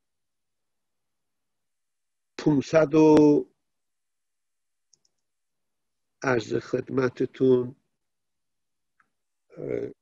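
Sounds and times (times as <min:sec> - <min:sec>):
faint short clicks: 0:04.9 - 0:05.3.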